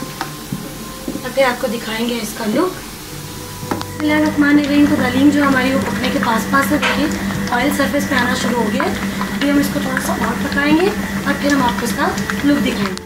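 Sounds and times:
background music with held tones: 0.0 - 13.0
sizzle from hot pot: 0.0 - 13.0.

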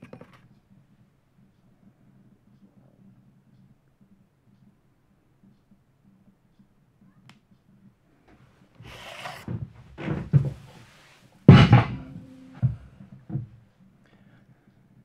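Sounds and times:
metal parts clunking on workbench: 11.5 - 12.9.

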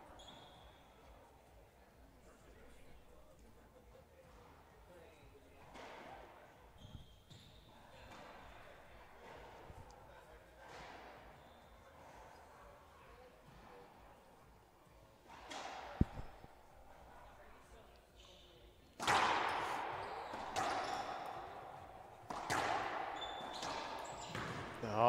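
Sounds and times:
murmur of spectators' voices: 0.0 - 23.2
soft thuds: 15.6 - 16.9.

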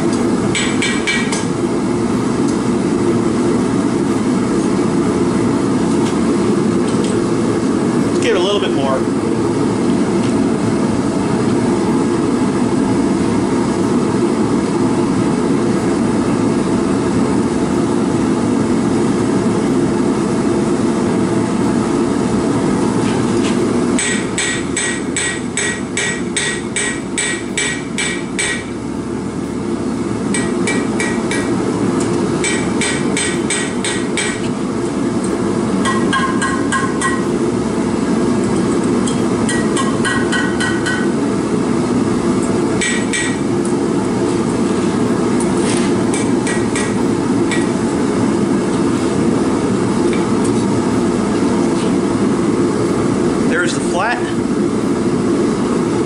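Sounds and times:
forge burner roaring: 0.0 - 56.0
hammer striking metal on anvil: 0.5 - 1.5, 24.0 - 28.8, 30.3 - 31.6, 32.4 - 34.5, 35.8 - 37.3, 39.1 - 41.2, 42.8 - 43.4, 46.1 - 47.7.

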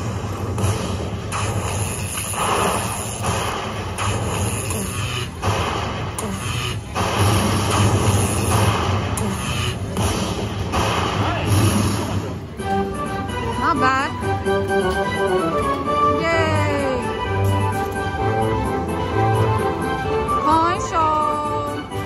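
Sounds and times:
slot machine win music: 12.4 - 22.0.

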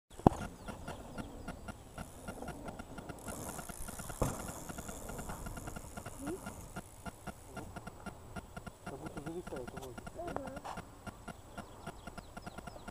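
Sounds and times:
bike knocking over roller: 0.1 - 7.4
faint steady ticking: 0.1 - 12.9
sharp click: 0.2 - 12.9.

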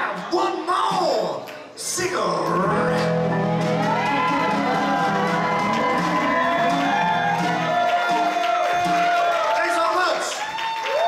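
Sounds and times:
audience cheering and whooping: 3.0 - 11.0.

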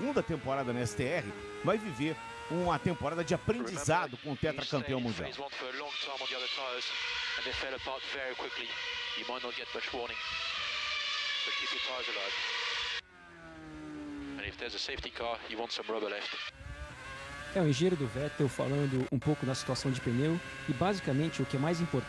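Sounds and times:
race car engine at high revs: 0.0 - 22.0
person speaking over radio: 3.3 - 6.6.

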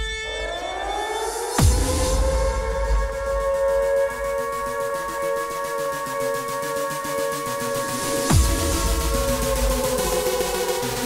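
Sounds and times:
deep bass: 1.6 - 5.3, 7.9 - 11.0
sustained synth chord: 1.6 - 11.0
electronic dance music: 3.2 - 11.0.

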